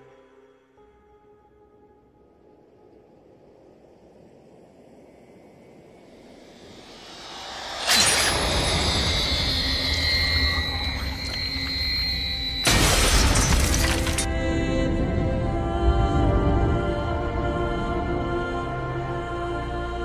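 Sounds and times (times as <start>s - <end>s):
low rumble: 3.0s - 20.0s
high ringing tones: 6.7s - 14.3s
loud crash: 6.8s - 11.8s, 12.6s - 14.3s
loud shattering crash: 7.3s - 11.9s, 12.6s - 14.3s.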